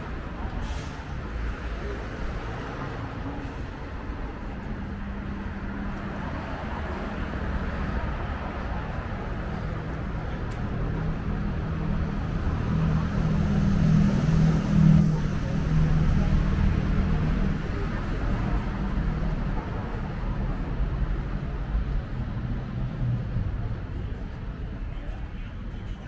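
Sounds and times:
background traffic hum: 0.0 - 26.0
bus and cars driving past: 0.0 - 26.0.

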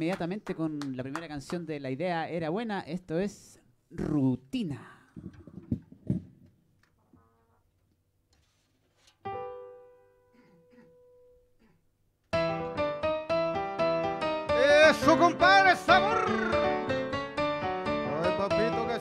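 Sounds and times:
fast repeated keyboard chords: 12.4 - 19.0.

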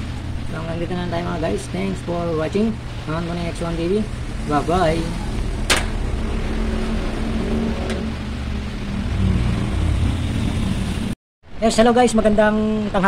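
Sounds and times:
vehicle engine rumbling: 0.0 - 11.2.

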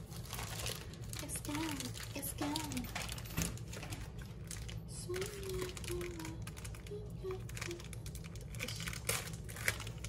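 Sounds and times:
plastic bag crinkling: 0.0 - 10.0.

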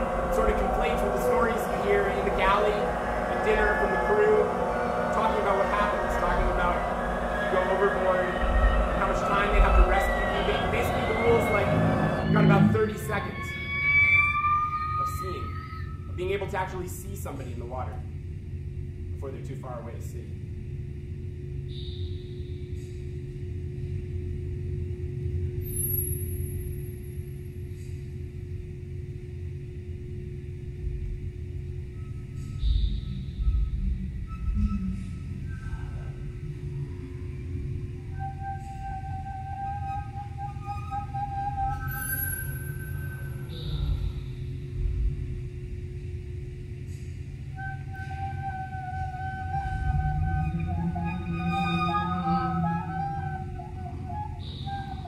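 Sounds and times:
thin high whistle: 0.0 - 16.9, 21.6 - 23.0, 25.6 - 27.1, 31.8 - 44.6, 46.9 - 55.0
wavering sustained tones: 0.0 - 17.9, 29.6 - 55.0
deep low drone: 0.0 - 55.0
steady low hum: 0.0 - 55.0.

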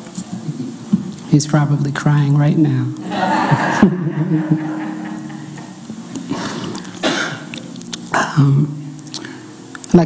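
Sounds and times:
man coughing and clearing throat: 6.4 - 7.5, 8.1 - 8.7.

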